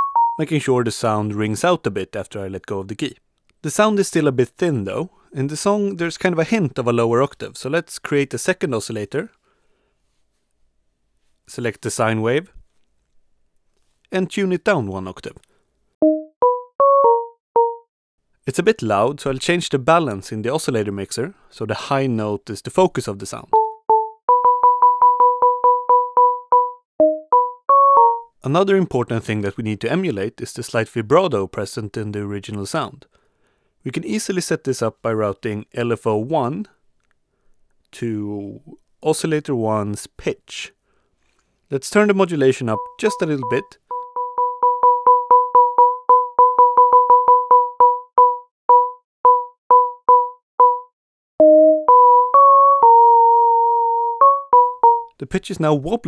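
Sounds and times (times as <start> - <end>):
synthesizer sine tone notes: 42.8 - 55.1.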